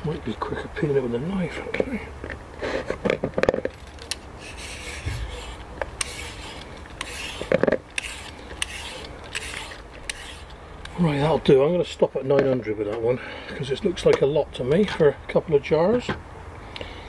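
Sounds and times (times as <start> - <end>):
peeler scraping squash skin: 3.7 - 11.5.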